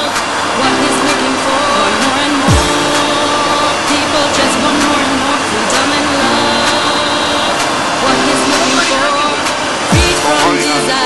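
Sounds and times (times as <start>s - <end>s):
car driving on road: 0.0s - 11.0s.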